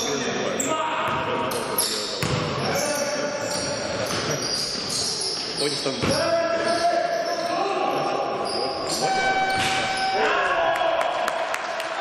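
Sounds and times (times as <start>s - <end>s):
sneakers squeaking: 0.0s - 10.2s.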